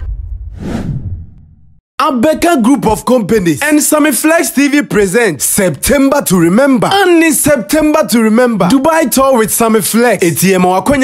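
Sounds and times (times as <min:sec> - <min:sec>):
whoosh sound effect: 0:00.0 - 0:01.7.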